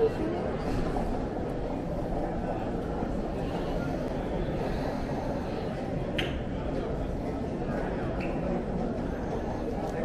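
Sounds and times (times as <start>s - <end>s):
chatter of walking crowd: 0.0s - 10.0s.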